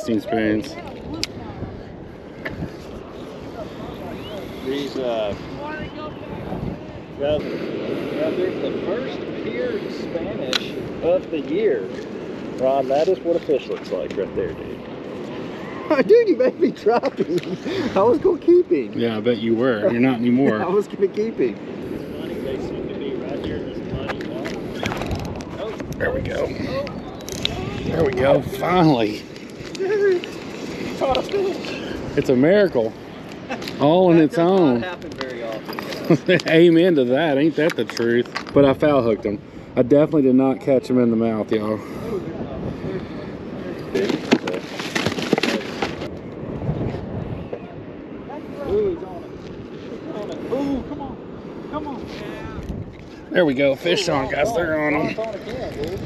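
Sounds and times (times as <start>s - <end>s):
faint voices: 0.0s - 16.5s, 40.4s - 56.0s
water noise: 0.0s - 56.0s
wind: 0.0s - 56.0s.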